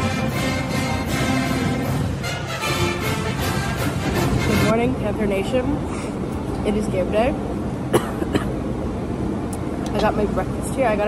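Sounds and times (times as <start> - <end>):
dining hall background noise: 0.0 - 10.7
woman coughing: 7.9 - 8.6.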